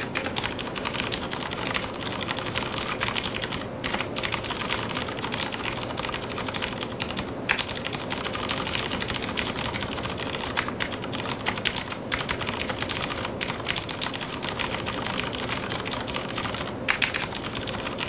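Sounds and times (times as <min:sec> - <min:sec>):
rapid mechanical keyboard typing: 0:00.0 - 0:18.0.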